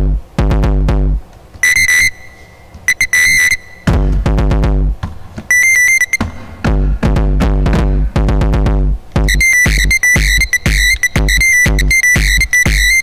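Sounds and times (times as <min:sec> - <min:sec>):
deep falling drum-machine bass hits: 0:00.0 - 0:01.2, 0:03.9 - 0:05.0, 0:06.2 - 0:13.0
rapid high alarm-like beeps: 0:01.6 - 0:03.9, 0:05.5 - 0:06.3, 0:09.3 - 0:13.0.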